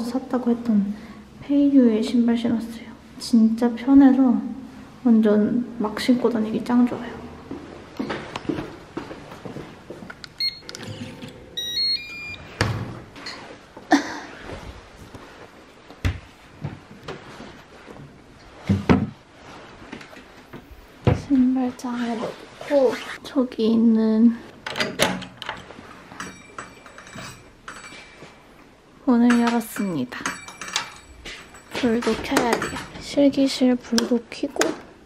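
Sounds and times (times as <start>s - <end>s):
door opening: 10.2s - 13.4s, 24.6s - 27.4s
door lock keypad beeps: 10.4s - 12.6s.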